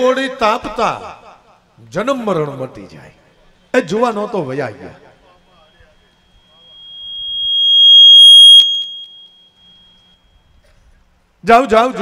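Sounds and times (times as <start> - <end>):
microphone feedback ringing: 5.4 - 10.6.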